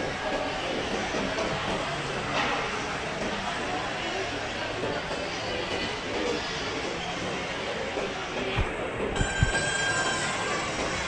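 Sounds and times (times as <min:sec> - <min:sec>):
indoor crowd hubbub: 0:00.0 - 0:11.0.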